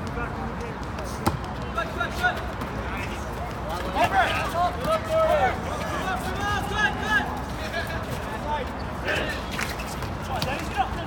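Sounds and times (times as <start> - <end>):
players shouting: 1.8 - 8.4.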